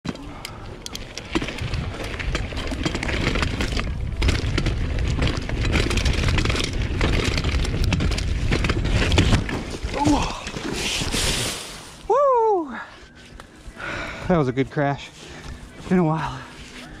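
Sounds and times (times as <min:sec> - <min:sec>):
bike rattles and clicks: 0:00.1 - 0:17.0
bike tyre noise: 0:00.1 - 0:17.0
wind rumble on microphone: 0:01.1 - 0:12.1
bike crashing: 0:01.2 - 0:12.1.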